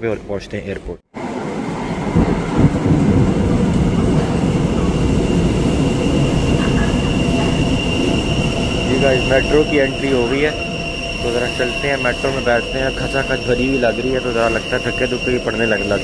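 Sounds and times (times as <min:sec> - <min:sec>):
train rumbling into station: 0:01.1 - 0:16.0
thin high steady whine: 0:04.0 - 0:16.0.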